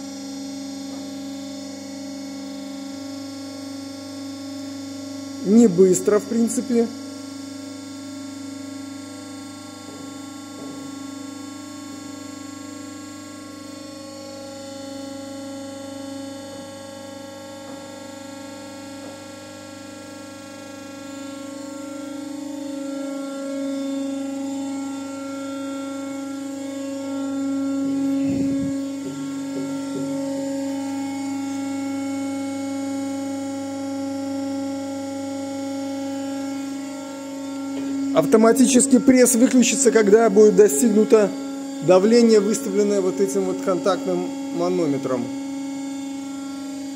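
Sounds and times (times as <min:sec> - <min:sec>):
hydraulic pump whining hum: 0:00.0 - 0:46.9.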